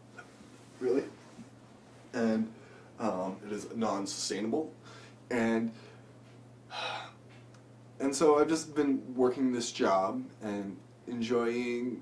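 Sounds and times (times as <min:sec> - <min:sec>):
faint low hum: 0:00.0 - 0:12.0
man breathing in: 0:04.8 - 0:05.2.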